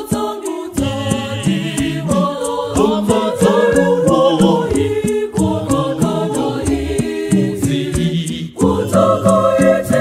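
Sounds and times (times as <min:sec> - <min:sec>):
choir singing a hymn: 0:00.0 - 0:10.0
steady percussion beat: 0:00.0 - 0:10.0.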